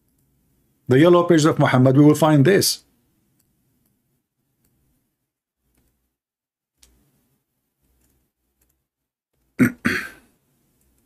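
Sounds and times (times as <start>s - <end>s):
man coughing: 9.6s - 10.3s.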